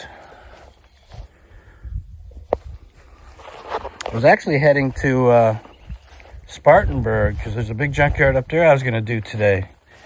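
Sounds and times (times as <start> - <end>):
footsteps rustling through grass: 0.0 - 10.0.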